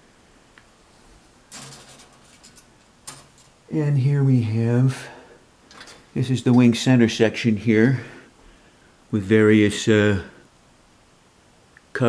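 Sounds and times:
plastic parts rustling and clicking: 1.5s - 3.6s, 5.7s - 6.1s.

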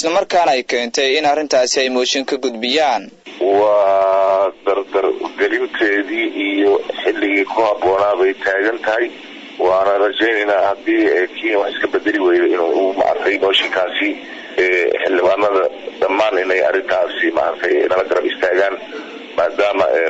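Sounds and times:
person narrating: 0.0s - 20.0s.

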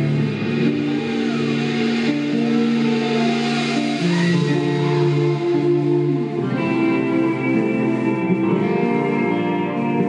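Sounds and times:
rock band guitar chords: 0.0s - 10.0s.

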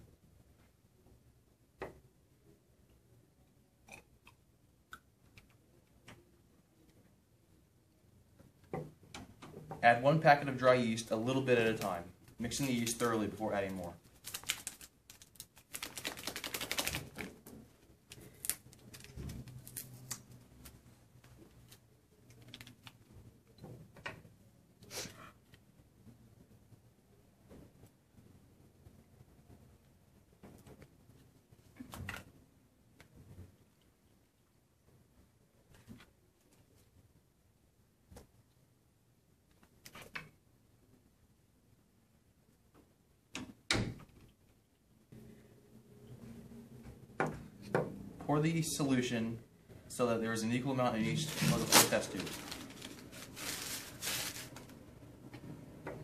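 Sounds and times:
paper packet crinkling: 11.7s - 17.5s, 18.1s - 20.8s, 51.0s - 54.8s.

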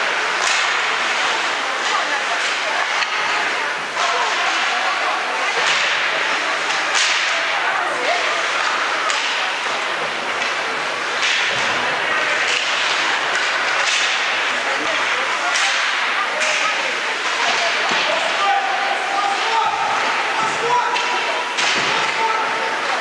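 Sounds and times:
faint voices: 0.0s - 23.0s
sticks clacking on puck: 0.1s - 23.0s.

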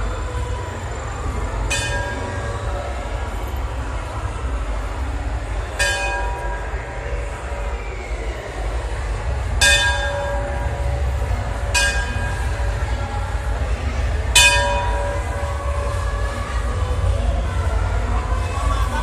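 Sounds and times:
steady low rumble: 0.0s - 19.0s
temple bell ringing: 1.7s - 3.1s, 5.8s - 7.4s, 9.6s - 13.5s, 14.3s - 16.0s.

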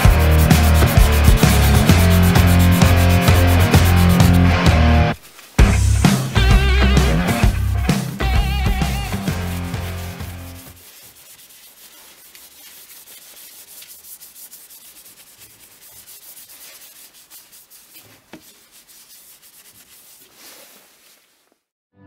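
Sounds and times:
hand rubbing wooden handle: 0.0s - 5.4s, 6.9s - 21.6s
music: 0.0s - 10.8s.

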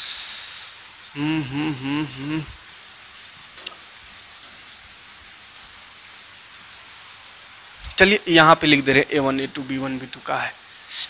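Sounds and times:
faint room noise hiss: 0.0s - 11.0s.

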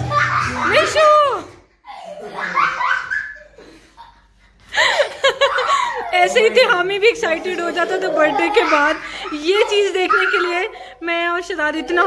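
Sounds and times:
people laughing: 1.9s - 10.0s.

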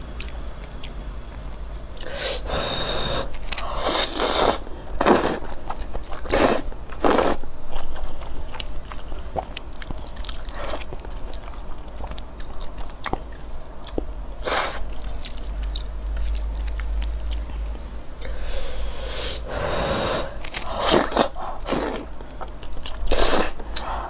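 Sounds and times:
chewing: 5.0s - 14.1s, 14.8s - 18.0s
wet noodle slurping: 20.2s - 22.1s.

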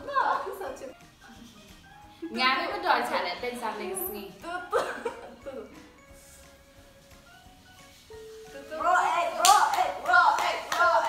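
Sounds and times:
girls' voices: 8.6s - 11.0s
rhythmic hand claps: 9.2s - 11.0s.

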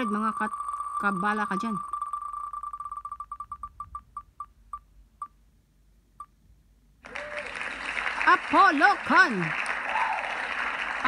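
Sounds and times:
spinning wheel ticking: 0.0s - 4.5s.

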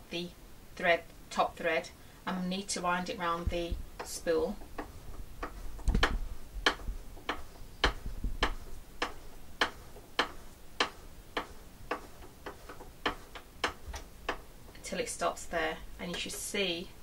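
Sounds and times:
steady ticking clicks: 3.4s - 15.2s.

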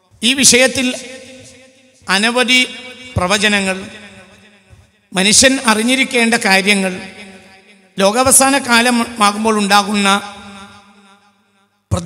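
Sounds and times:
man lecturing: 0.1s - 1.4s, 2.1s - 4.2s, 5.2s - 7.2s, 8.0s - 10.6s.

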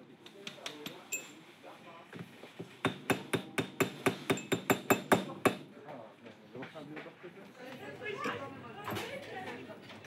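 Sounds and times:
small hammer tapping metal: 2.9s - 5.6s.

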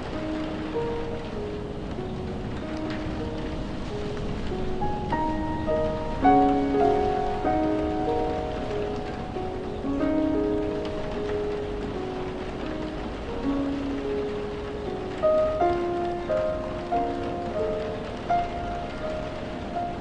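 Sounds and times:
gentle piano music: 0.0s - 20.0s
steady falling rain: 0.0s - 20.0s.

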